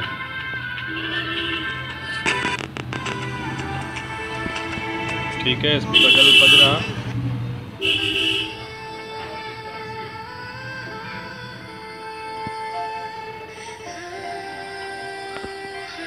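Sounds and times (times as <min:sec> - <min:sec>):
song from small speaker: 0:00.0 - 0:07.0, 0:07.8 - 0:16.0.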